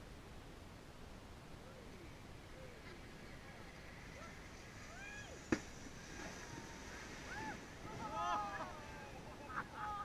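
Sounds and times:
distant voices shouting: 2.5 - 10.0.

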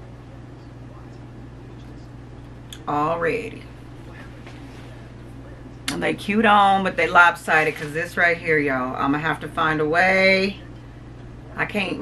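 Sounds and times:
low steady background hum: 0.0 - 12.0
woman speaking: 2.7 - 4.2, 5.9 - 10.6, 11.6 - 12.0.

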